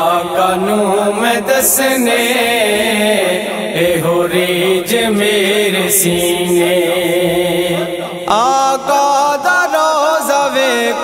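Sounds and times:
devotional singing: 0.0 - 11.0.

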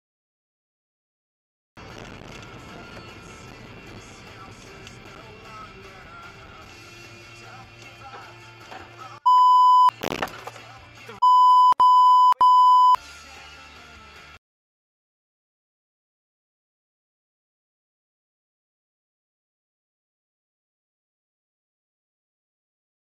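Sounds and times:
censor bleeps: 9.3 - 9.9, 11.2 - 13.0.

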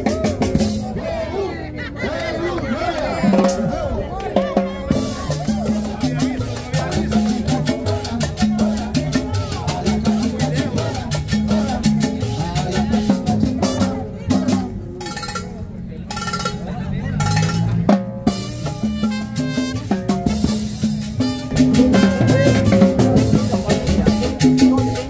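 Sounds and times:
drums and percussion: 0.0 - 1.2, 3.1 - 25.0
live band playing salsa: 0.0 - 1.4, 3.0 - 25.0
horns: 18.3 - 24.3.

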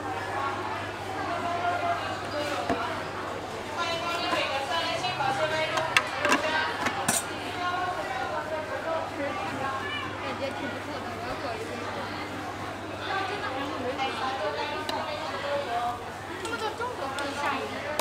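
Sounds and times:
chatter of voices: 0.0 - 18.0.

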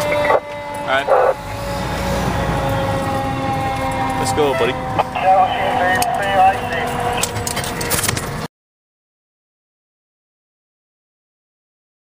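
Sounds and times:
fire truck engine running: 0.0 - 8.5
sharp clicks and knocks: 6.0 - 8.4.

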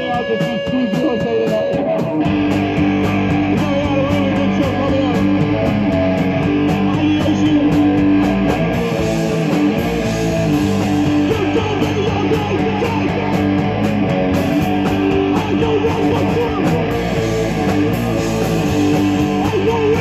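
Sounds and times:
bass guitar: 0.0 - 20.0
drums with cymbal hits: 0.0 - 20.0
electric guitar: 0.0 - 20.0.

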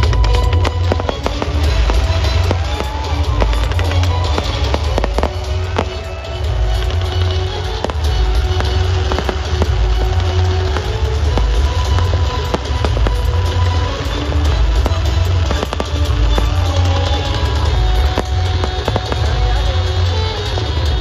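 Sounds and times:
fireworks popping and crackling: 0.0 - 21.0
music with heavy bass beat: 0.0 - 21.0.

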